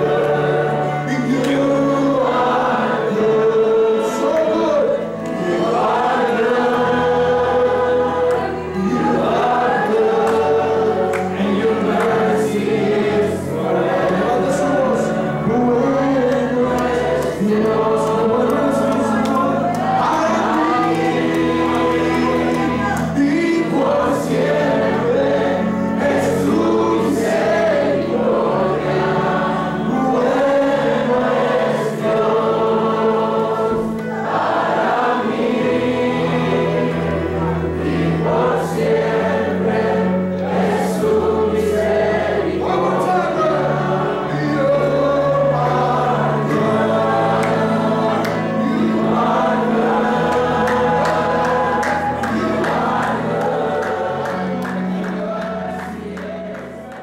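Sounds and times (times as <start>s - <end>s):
choir singing gospel song: 0.0s - 57.0s
guitar: 0.0s - 57.0s
keyboard: 0.0s - 57.0s.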